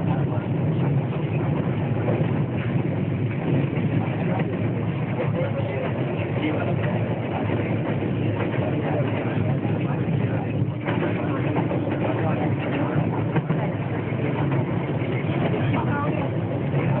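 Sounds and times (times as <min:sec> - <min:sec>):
train coach rattling and clicking: 0:00.0 - 0:17.0
train wheels rumbling on rails: 0:00.0 - 0:17.0.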